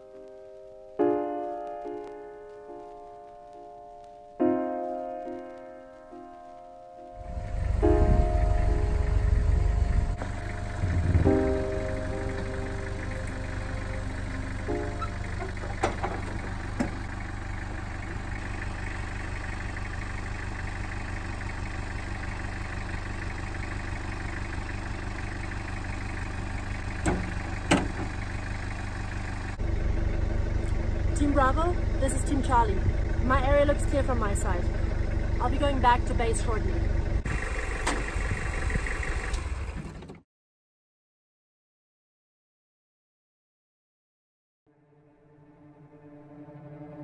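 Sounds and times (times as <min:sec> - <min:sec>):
vehicle engine idling: 0:01.6 - 0:40.2.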